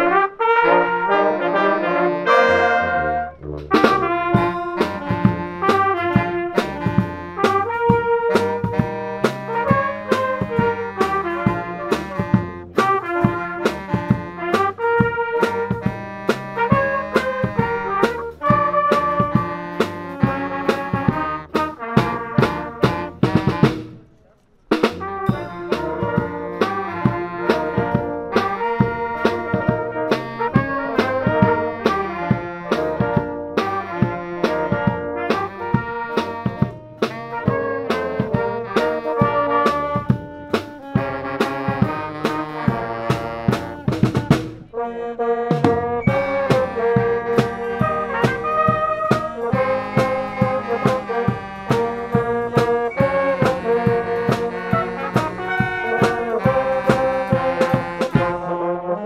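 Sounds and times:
brass band playing upbeat tune: 0:00.0 - 0:24.0, 0:24.7 - 0:59.0
drum kit steady beat: 0:02.3 - 0:24.0, 0:24.7 - 0:44.7, 0:45.5 - 0:58.6.

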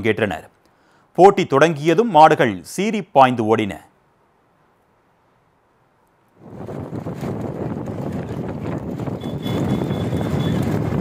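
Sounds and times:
wind on microphone: 0:06.4 - 0:11.0
cart wheels rolling: 0:06.5 - 0:11.0.

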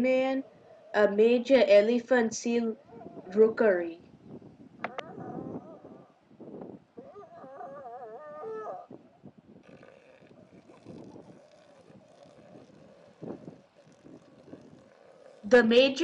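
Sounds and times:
elephant seals calling: 0:09.6 - 0:16.0.

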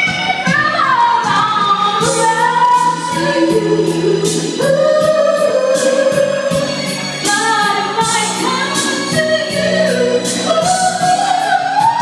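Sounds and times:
instrumental backing track: 0:00.0 - 0:12.0
two women singing a duet: 0:00.0 - 0:12.0.

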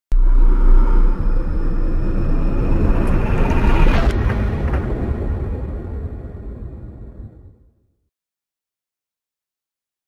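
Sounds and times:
rising whoosh: 0:00.1 - 0:07.7
deep rumble: 0:00.1 - 0:08.1.

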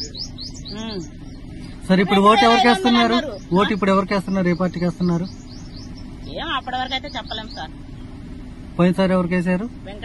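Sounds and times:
small bird chirping: 0:00.0 - 0:08.3.

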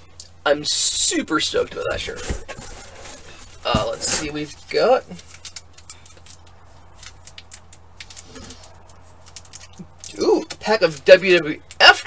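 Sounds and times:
low steady hum: 0:00.0 - 0:12.0
plastic wrapper crinkling: 0:01.8 - 0:10.1.

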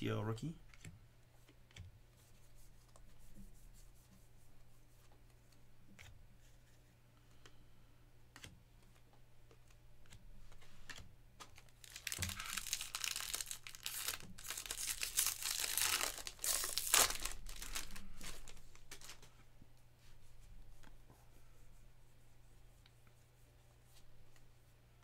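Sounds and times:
foil wrapper crinkling and tearing: 0:11.6 - 0:19.2.

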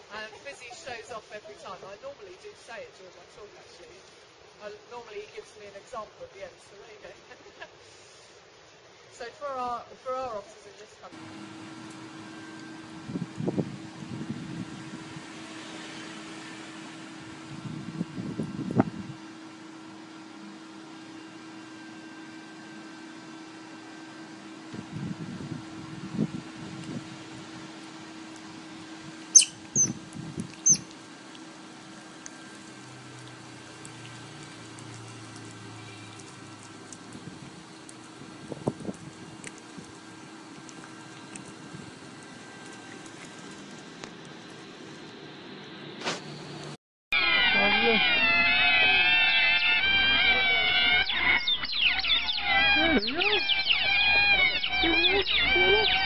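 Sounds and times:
otter squeaking and chirping: 0:29.3 - 0:30.9, 0:50.0 - 0:56.0.

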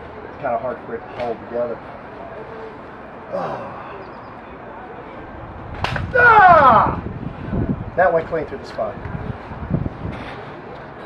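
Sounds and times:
man exclaiming: 0:06.1 - 0:07.0.

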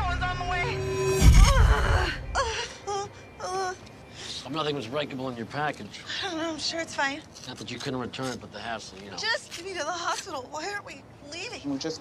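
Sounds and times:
woman moaning in pain: 0:01.4 - 0:03.8.

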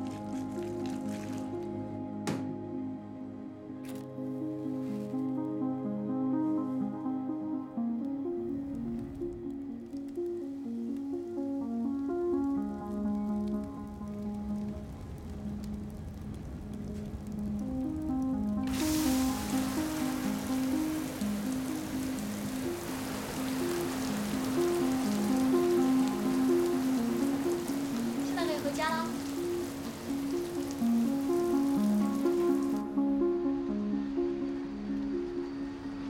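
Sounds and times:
water spraying from sprinklers: 0:00.0 - 0:01.8, 0:09.9 - 0:32.9
music of soft repeated notes: 0:00.0 - 0:36.0.

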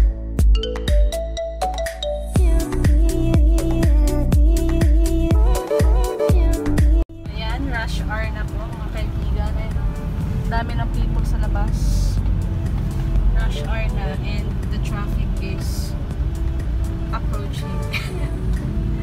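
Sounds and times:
music: 0:00.0 - 0:19.0
car engine rumble: 0:06.9 - 0:19.0
road noise inside car: 0:07.4 - 0:19.0.

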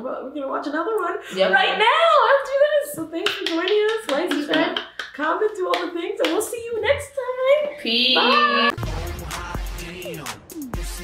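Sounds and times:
outro music with a beat: 0:08.8 - 0:11.0.

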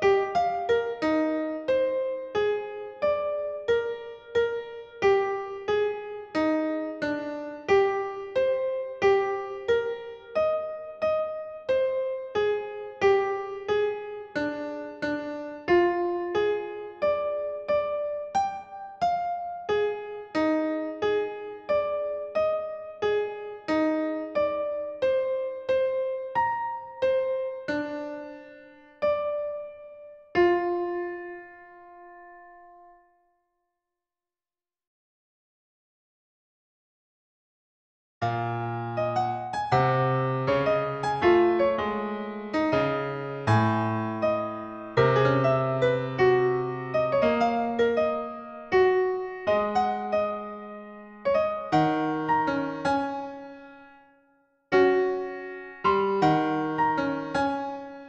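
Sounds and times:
slow solo piano music: 0:00.0 - 0:33.2, 0:38.2 - 0:58.0.

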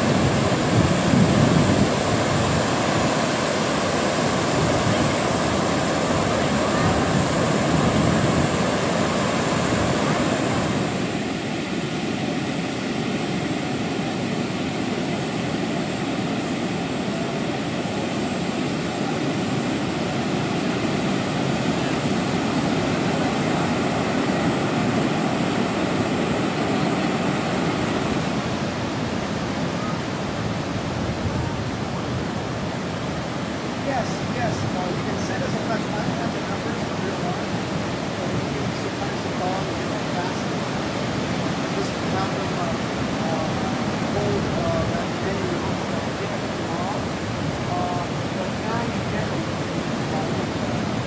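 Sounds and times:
ocean surf breaking: 0:00.0 - 0:51.0.

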